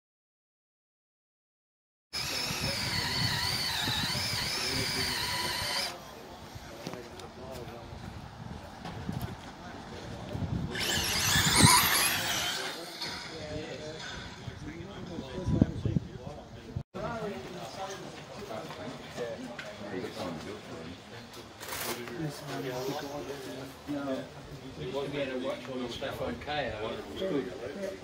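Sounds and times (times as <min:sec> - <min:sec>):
rc car motor whine: 0:02.2 - 0:06.8, 0:10.7 - 0:13.6, 0:22.5 - 0:23.6.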